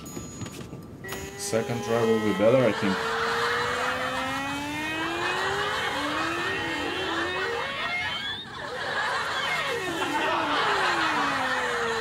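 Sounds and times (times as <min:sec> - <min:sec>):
sliding creaking comedy tone: 0:01.1 - 0:12.0.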